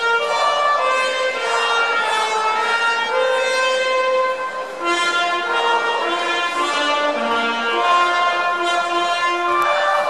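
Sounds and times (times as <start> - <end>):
orchestral anthem over loudspeakers: 0.0 - 10.0.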